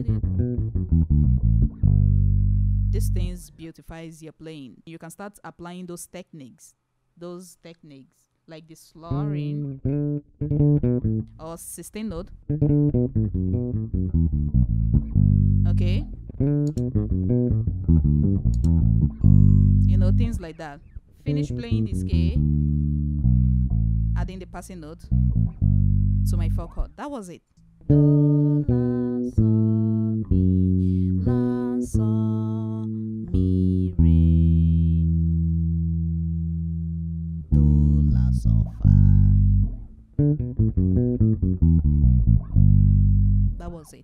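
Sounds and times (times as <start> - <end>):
electric bass guitar notes: 0.0 - 3.6, 9.0 - 27.0, 27.6 - 44.0.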